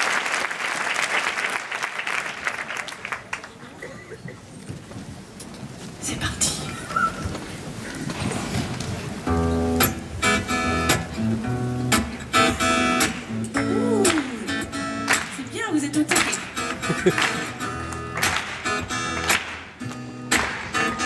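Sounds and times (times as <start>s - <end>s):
acoustic guitar strumming chords: 9.3s - 15.4s, 16.1s - 21.0s.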